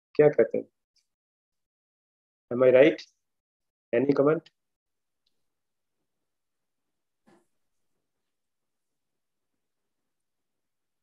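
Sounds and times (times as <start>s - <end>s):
man speaking over video call: 0.2s - 0.8s, 2.5s - 3.2s, 4.0s - 4.7s.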